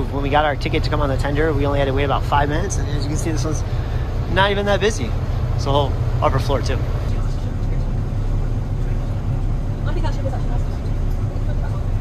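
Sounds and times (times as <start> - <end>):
boat engine running: 0.0 - 12.0.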